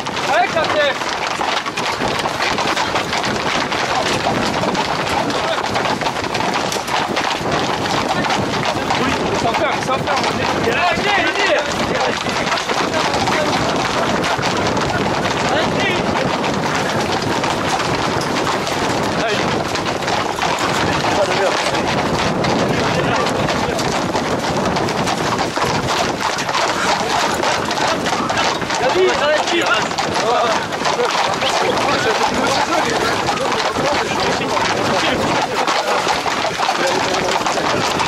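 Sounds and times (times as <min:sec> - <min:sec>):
crowd of runners calling out: 0:00.0 - 0:38.0
horses' hooves on paved road: 0:00.0 - 0:38.0
wind on microphone: 0:01.6 - 0:38.0.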